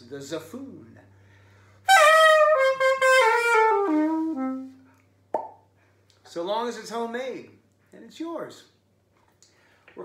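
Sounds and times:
pocket sax descending notes: 0:01.9 - 0:04.9.

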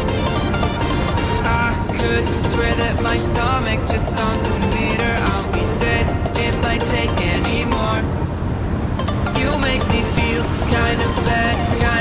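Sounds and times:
background pop music: 0:00.0 - 0:08.1, 0:09.0 - 0:12.0.

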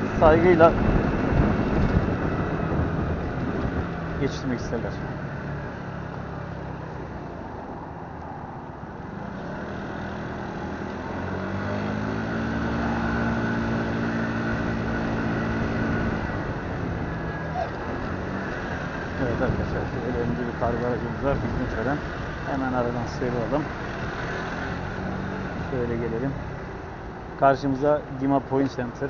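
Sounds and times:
motorbike engine revving: 0:00.0 - 0:07.8, 0:08.9 - 0:29.0
road and wind noise: 0:00.0 - 0:29.0.

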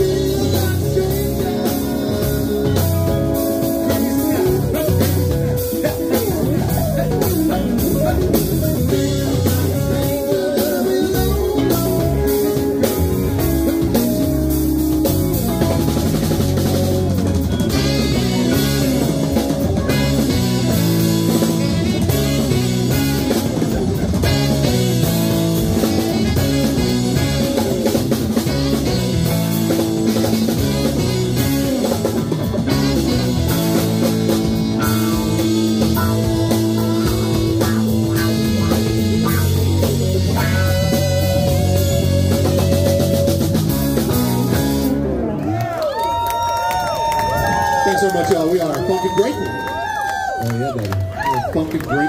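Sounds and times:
instrumental rock band: 0:00.0 - 0:52.0.

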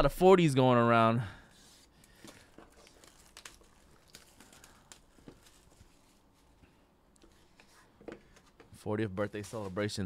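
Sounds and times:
faint rustling of cardboard box: 0:01.5 - 0:10.0.

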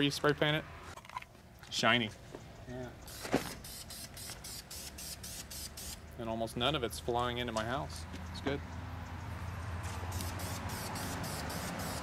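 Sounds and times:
spray paint can hissing: 0:03.0 - 0:06.0, 0:10.1 - 0:12.0.

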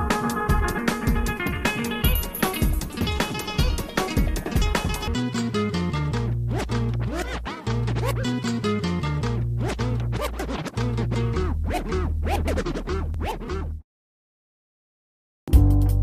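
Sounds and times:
background music with low bass: 0:00.0 - 0:13.8, 0:15.5 - 0:16.0
scratch-like sliding sounds: 0:09.6 - 0:13.7.

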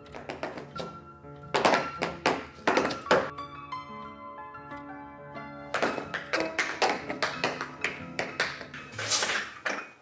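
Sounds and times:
dance shoes stamping: 0:00.0 - 0:03.3, 0:05.8 - 0:09.8.

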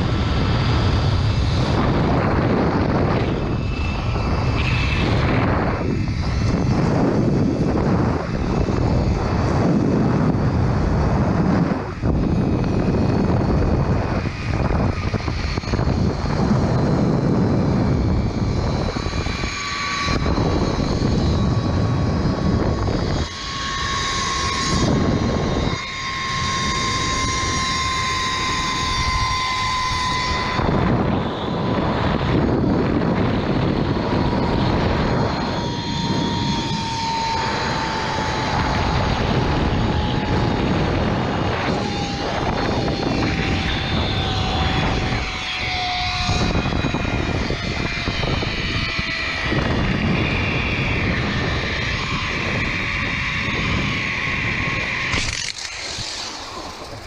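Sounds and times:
wind rushing over microphone: 0:00.0 - 0:57.0
zipline trolley whine on cable: 0:00.0 - 0:57.0.

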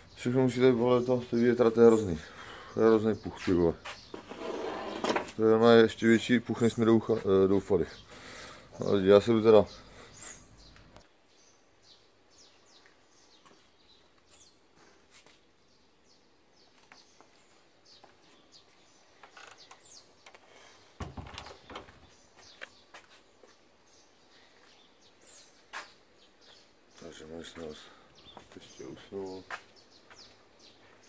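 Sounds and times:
small birds chirping: 0:00.0 - 0:31.0.

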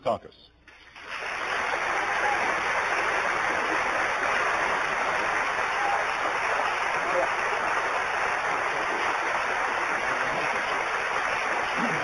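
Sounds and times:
audience applauding: 0:00.7 - 0:12.0.

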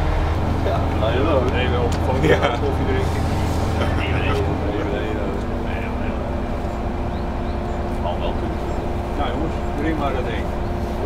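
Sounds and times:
engine running: 0:00.0 - 0:11.0
people talking: 0:00.6 - 0:06.6, 0:07.8 - 0:11.0.

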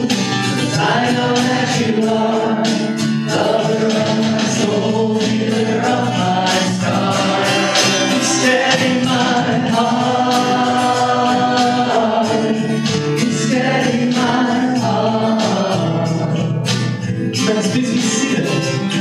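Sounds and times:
acoustic guitar strumming: 0:00.0 - 0:19.0
man singing: 0:00.0 - 0:19.0.

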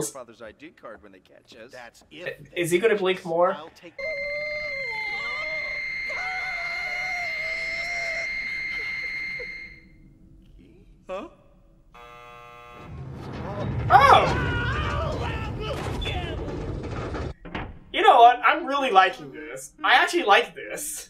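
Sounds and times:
voices talking: 0:03.6 - 0:09.6
loud shouting: 0:04.6 - 0:08.9, 0:13.9 - 0:16.4
short buzzing tone: 0:12.0 - 0:13.0.

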